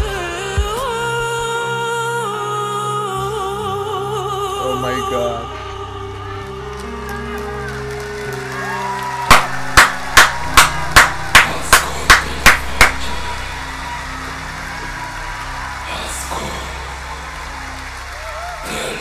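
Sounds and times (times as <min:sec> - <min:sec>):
concert music: 0:00.0 - 0:19.0
person clapping hands: 0:06.7 - 0:13.3.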